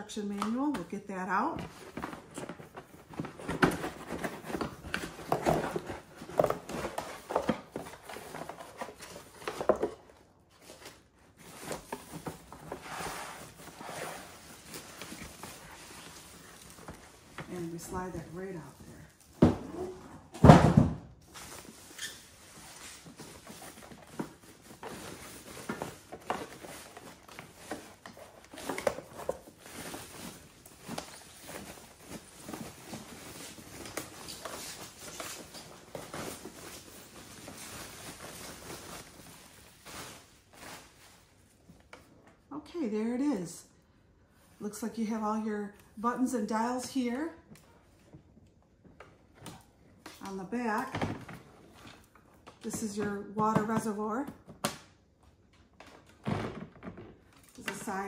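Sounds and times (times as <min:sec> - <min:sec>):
cardboard and plastic rustling: 0:00.1 - 0:42.5, 0:47.4 - 0:58.0.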